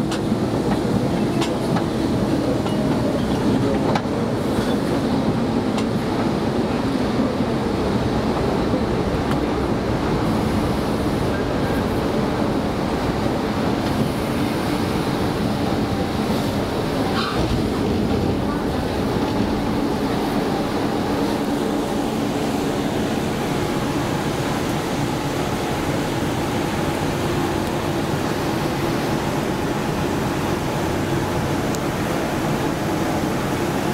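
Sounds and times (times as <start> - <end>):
subway wheels rumbling on rail: 0.0 - 33.9.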